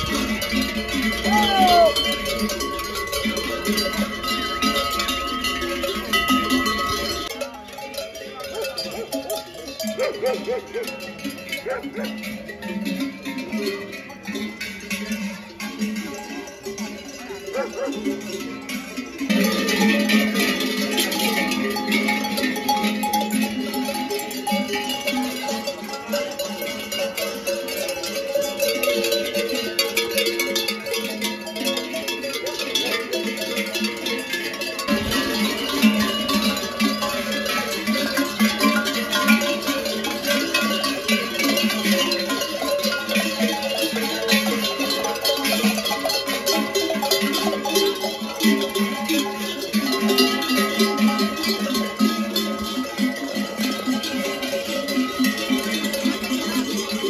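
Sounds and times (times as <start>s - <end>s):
cowbells clanging: 0.0s - 57.0s.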